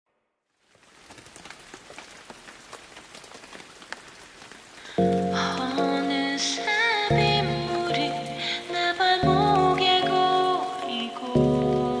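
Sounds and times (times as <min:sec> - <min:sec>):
rain patter: 0:00.6 - 0:12.0
music with chords and bass: 0:07.1 - 0:08.5.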